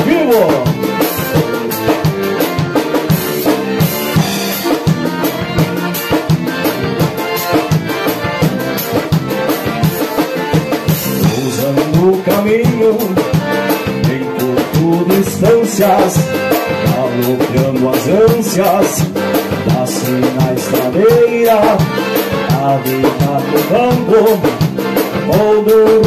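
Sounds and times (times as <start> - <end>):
accordion melody: 0.0 - 26.0
drum kit beat: 0.0 - 26.0
strummed acoustic guitar: 0.0 - 26.0.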